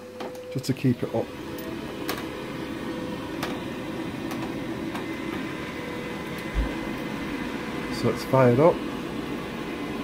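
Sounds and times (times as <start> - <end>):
boiler fan and pump humming: 0.0 - 10.0.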